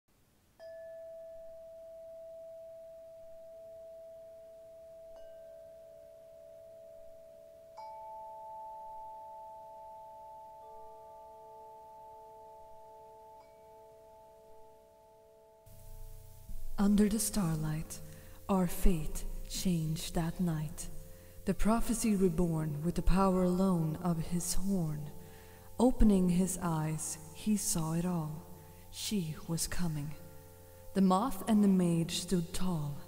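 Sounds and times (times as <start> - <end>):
soft bell-like chime tones: 0.6 - 16.5.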